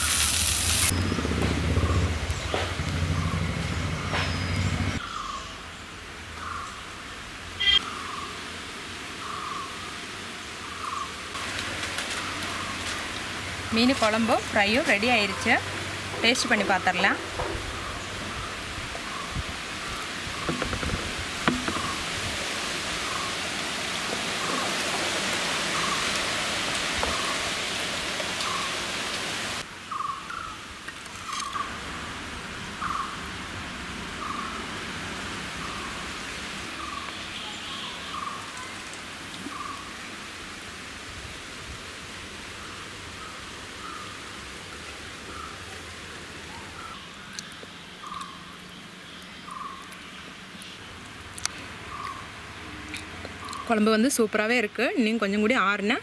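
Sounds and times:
steady hiss: 0.0 - 0.9.

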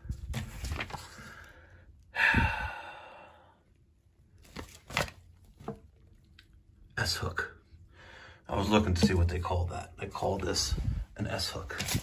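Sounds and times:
paper rustling and tapping: 0.1 - 1.3
man sighing: 2.1 - 3.3.

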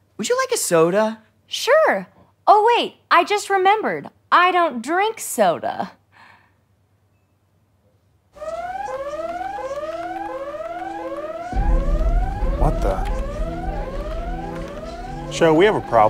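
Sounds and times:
rising electronic warning alarm: 8.4 - 16.0
deep low rumble: 11.5 - 16.0.

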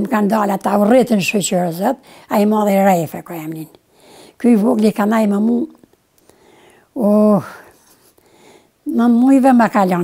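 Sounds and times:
elderly woman speaking: 0.0 - 3.8, 4.4 - 5.9, 7.0 - 7.8, 8.8 - 10.0
faint breathy sound: 6.2 - 8.8.

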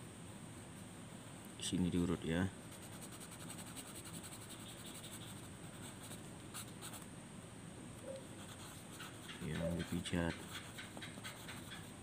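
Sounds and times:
sharp pencil strokes: 2.6 - 7.0, 8.4 - 12.0
pencil scratching on paper: 2.7 - 7.0, 8.4 - 12.0.

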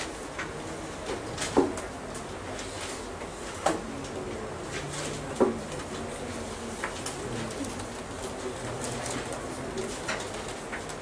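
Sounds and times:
room noise: 0.0 - 11.0.

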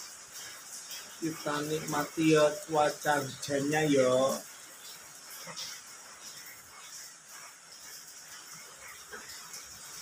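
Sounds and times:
rain falling steadily: 0.0 - 10.0.

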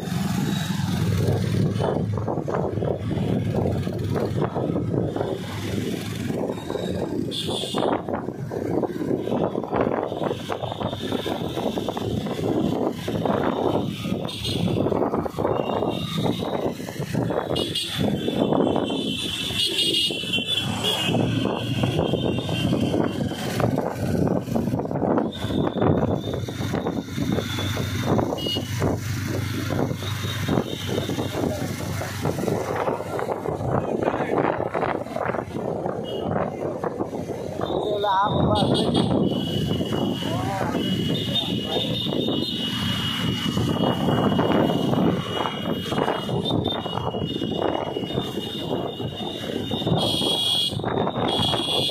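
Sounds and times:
motorcycle engine and road noise: 0.0 - 51.9.

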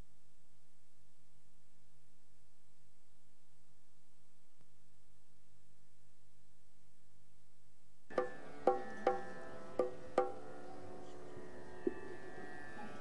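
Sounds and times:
low steady hum: 0.0 - 13.0
plucked string notes ringing: 8.1 - 13.0.

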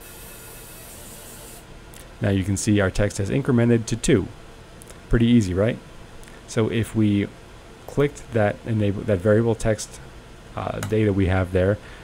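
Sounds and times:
laser high hiss: 0.0 - 1.7.

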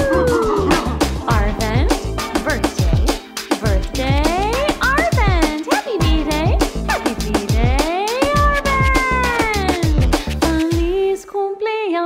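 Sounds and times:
pop backing track with drums: 0.0 - 11.1.

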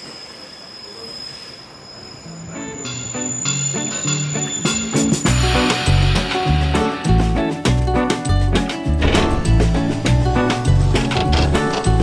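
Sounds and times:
train wheels and brakes squealing: 0.0 - 5.7.

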